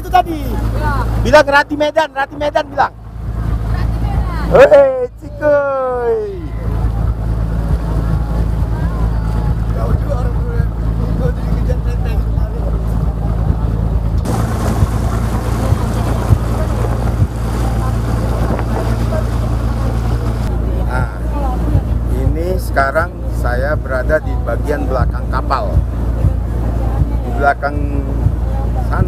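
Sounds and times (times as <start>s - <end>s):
boat engine droning: 0.0s - 29.0s
water rushing in wake: 0.0s - 29.0s.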